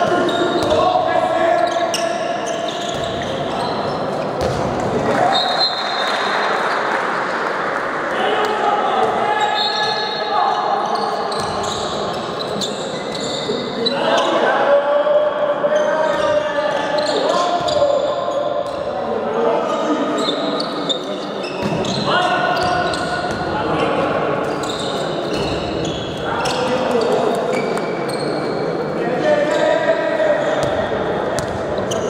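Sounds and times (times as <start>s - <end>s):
players shouting in a hall: 5.0s - 11.1s.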